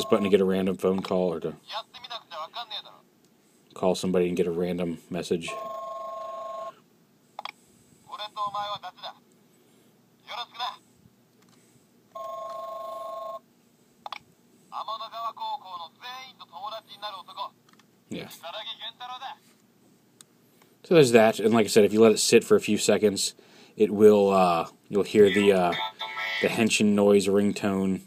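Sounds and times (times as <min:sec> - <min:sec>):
recorded character voice messages: 0:08.1 - 0:09.2, 0:10.2 - 0:10.8, 0:25.2 - 0:26.6.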